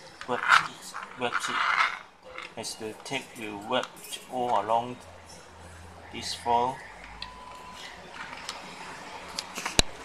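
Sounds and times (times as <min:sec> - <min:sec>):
man talking: 0:00.2 - 0:01.9, 0:02.6 - 0:05.0, 0:06.1 - 0:06.8.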